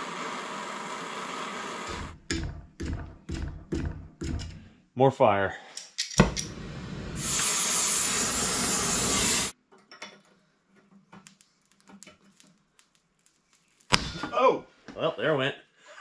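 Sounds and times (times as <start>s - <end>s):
gas torch flame hissing: 0.0s - 2.2s, 6.2s - 9.6s.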